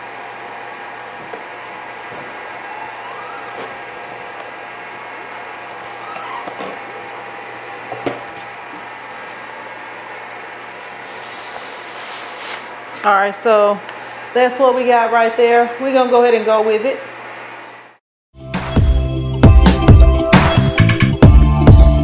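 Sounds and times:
steady hum: 0.0s - 18.0s
short rising squeak: 6.0s - 6.6s.

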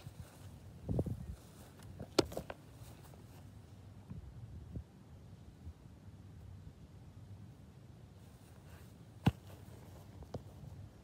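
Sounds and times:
quiet outdoor background: 0.0s - 11.0s
soft thumps: 9.2s - 10.5s.

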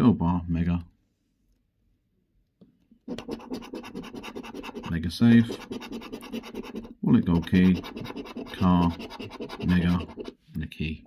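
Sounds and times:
coin scratching scratch card: 3.1s - 10.4s.

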